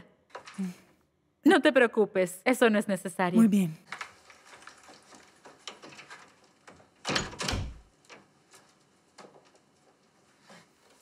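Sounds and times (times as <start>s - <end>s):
door shutting with heavy thud: 7.0s - 7.9s.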